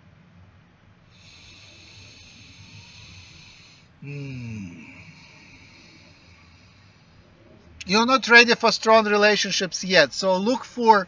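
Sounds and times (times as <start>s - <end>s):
faint low hum: 0.0s - 11.0s
man breathing slowly: 1.0s - 7.6s.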